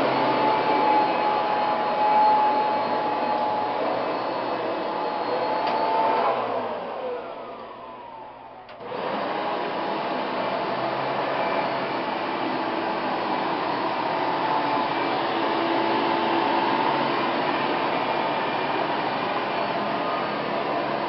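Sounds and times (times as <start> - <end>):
vacuum cleaner motor whine: 0.0 - 21.0.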